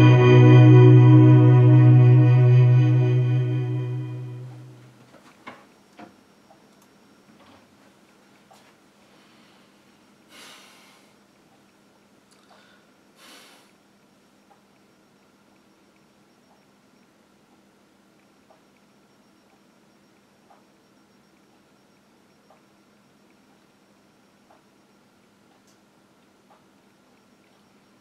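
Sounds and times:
steady low hum: 0.0 - 5.0
faint ticks: 13.7 - 28.0.

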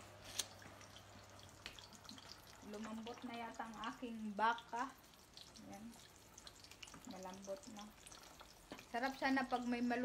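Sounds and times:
pot simmering: 0.0 - 10.0.

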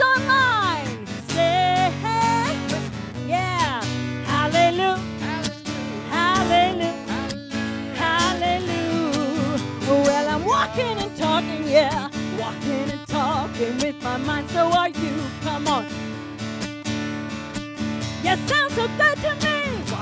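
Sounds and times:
woman singing gospel song: 0.0 - 15.9, 18.2 - 20.0
strummed guitar: 0.0 - 20.0.

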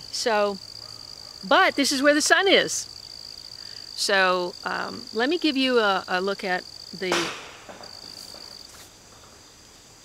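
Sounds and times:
insect high-pitched buzz: 0.0 - 10.0.

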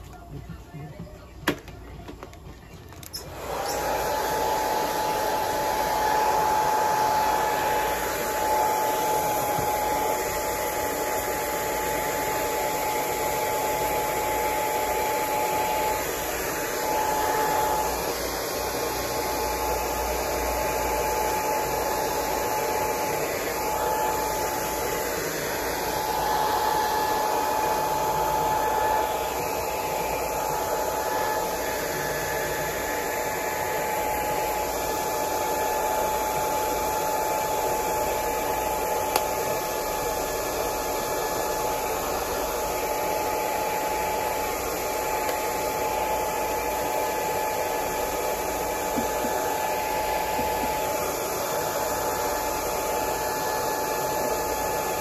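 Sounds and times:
hair dryer blowing: 0.0 - 55.0.

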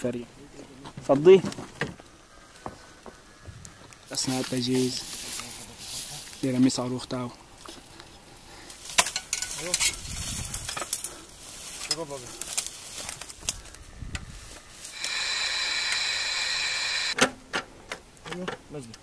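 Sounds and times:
steady high whine: 14.5 - 17.2.

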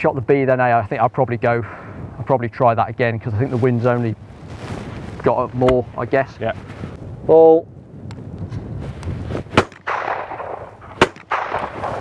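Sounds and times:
shotgun shots: 9.5 - 12.0.

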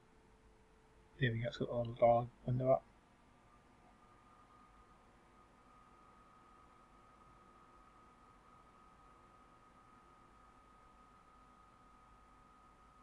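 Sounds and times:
faint high-pitched whine: 0.0 - 13.0.

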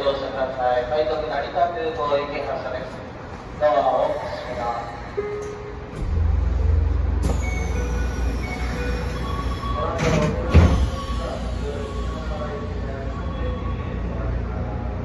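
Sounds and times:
train low hum: 0.0 - 15.0
short held tones: 7.2 - 10.0.

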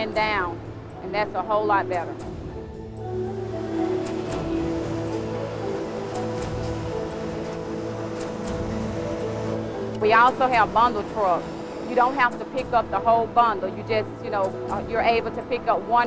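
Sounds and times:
sustained slowly changing notes: 2.2 - 15.0.

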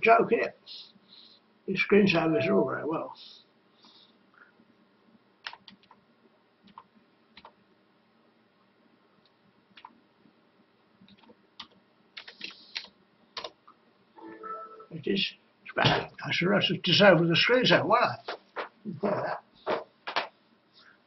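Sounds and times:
computer keyboard typing: 5.4 - 6.0, 6.7 - 7.6, 11.1 - 13.6.

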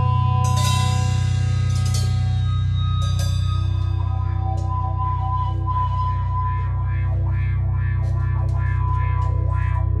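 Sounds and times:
steady held ringing tone: 0.0 - 8.2
bass guitar droning: 0.0 - 10.0
distorted electric guitar: 0.0 - 10.0.

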